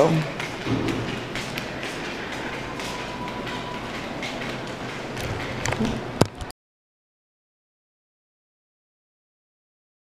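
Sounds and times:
steady background noise: 0.0 - 6.5
footsteps on tiled floor: 0.2 - 6.5.

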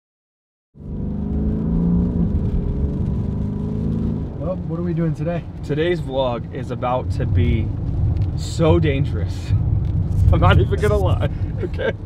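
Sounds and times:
car engine hum: 0.8 - 12.0
road noise rumble: 0.8 - 12.0
man speaking: 10.2 - 11.9.

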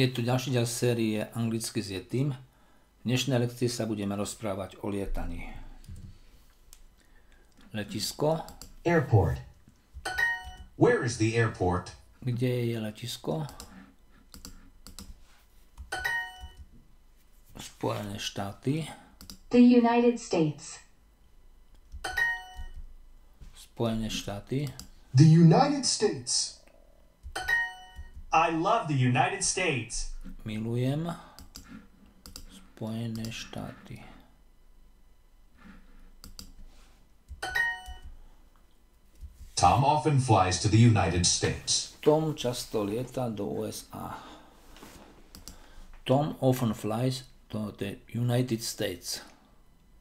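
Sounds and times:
computer clicks: 13.4 - 15.2, 19.2 - 19.5, 31.3 - 33.4, 36.2 - 36.6, 45.3 - 45.6.

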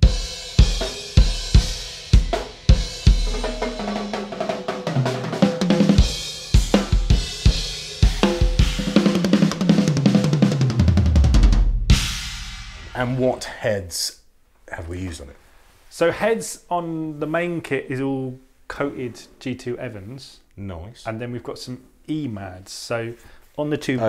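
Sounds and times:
drum fill on toms: 0.0 - 13.3
bass drum hits: 10.8 - 13.2.

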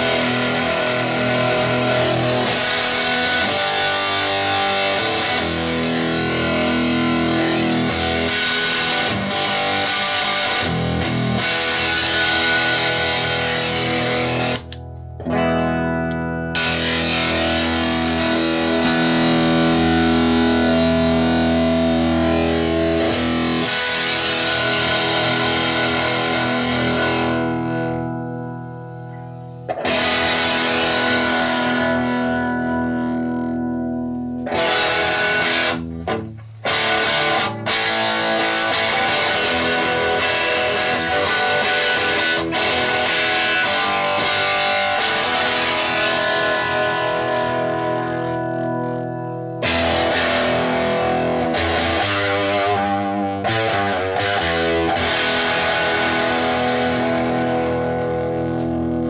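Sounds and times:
choppy guitar strums: 0.0 - 59.0
fuzzed electric guitar chords: 0.0 - 59.0.

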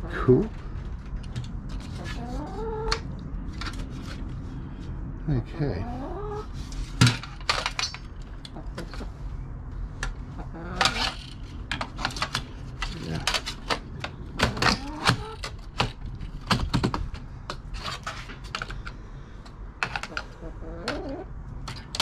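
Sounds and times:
metal parts clattering: 7.0 - 8.2.

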